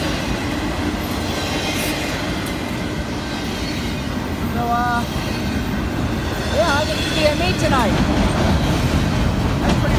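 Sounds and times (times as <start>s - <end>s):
steel wheels rumbling on rails: 0.0s - 9.9s.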